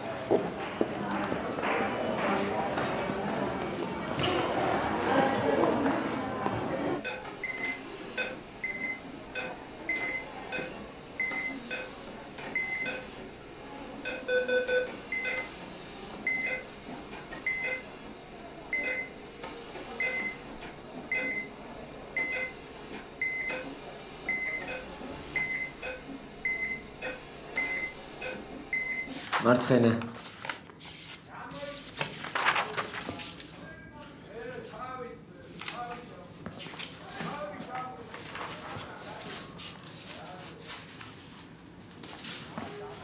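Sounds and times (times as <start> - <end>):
patient monitor beeping: 7.0 - 29.3.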